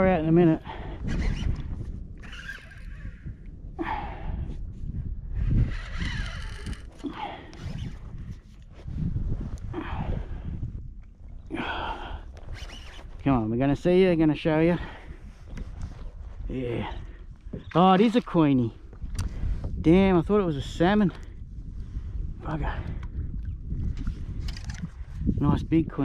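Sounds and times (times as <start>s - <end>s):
wind rumble on microphone: 0.0s - 26.0s
fishing rod and reel handling: 1.0s - 3.6s, 5.5s - 8.9s, 12.3s - 13.3s, 17.5s - 19.4s, 23.8s - 25.2s.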